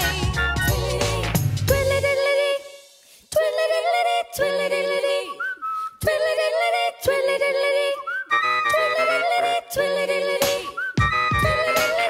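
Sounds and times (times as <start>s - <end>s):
female group singing a cappella: 0.0s - 12.0s
whistled note sliding up: 4.9s - 6.4s, 7.8s - 9.6s, 10.4s - 12.0s.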